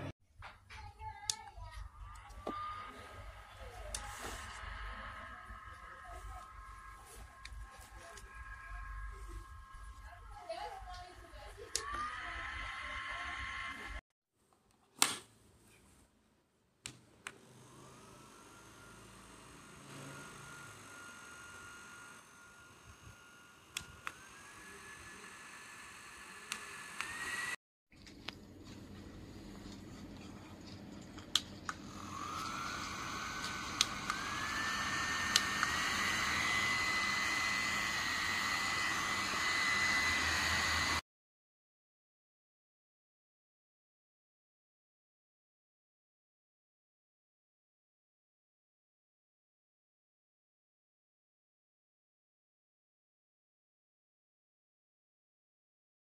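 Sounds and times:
fan motor whining: 17.3 - 27.6, 31.2 - 41.0.

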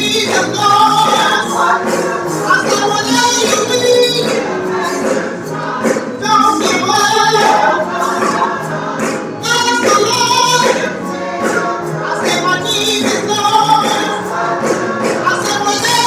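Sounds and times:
choir singing: 0.0 - 16.0.

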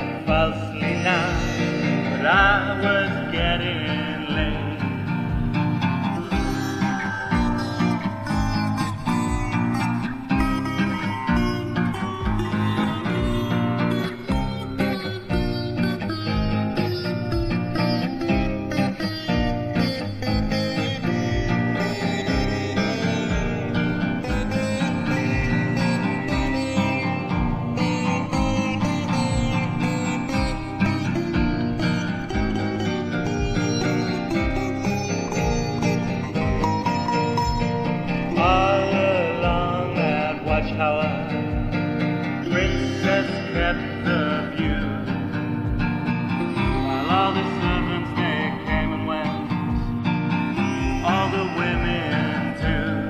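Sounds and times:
acoustic guitar strumming: 0.0 - 53.0
guitar melodic line: 0.0 - 53.0
pitch-bending guitar line: 0.0 - 53.0.

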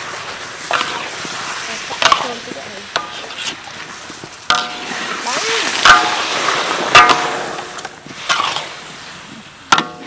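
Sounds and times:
metal spatula scraping wok: 0.0 - 9.0
sauce sizzling: 0.0 - 9.1.

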